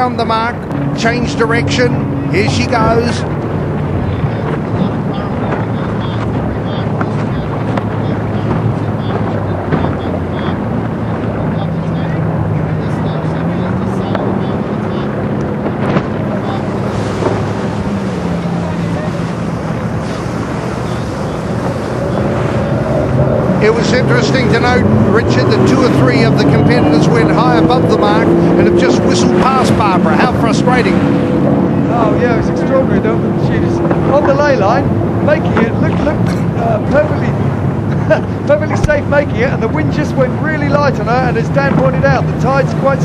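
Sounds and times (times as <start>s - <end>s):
motorboat engine running: 0.0s - 43.0s
water noise: 0.0s - 43.0s
wind on microphone: 0.0s - 43.0s.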